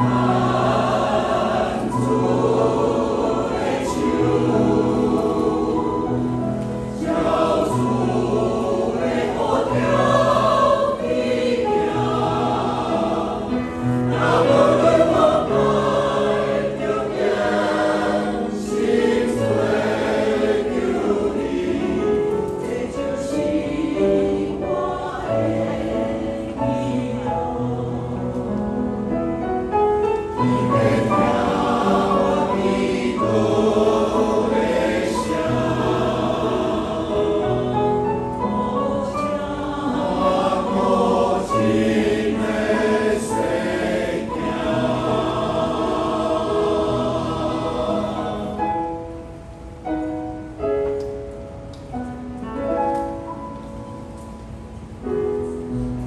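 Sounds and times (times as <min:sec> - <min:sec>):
choir singing a hymn: 0:00.0 - 0:50.6.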